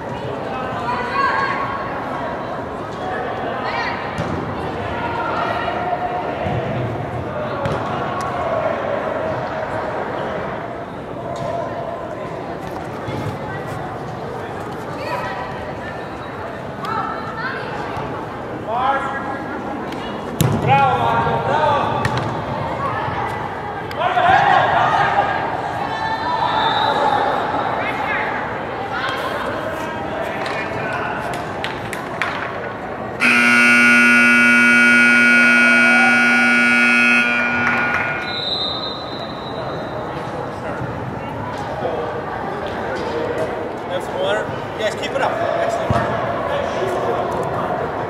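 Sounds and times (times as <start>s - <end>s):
scoreboard buzzer long tone: 33.2s - 38.4s
voices calling out: 33.2s - 39.4s.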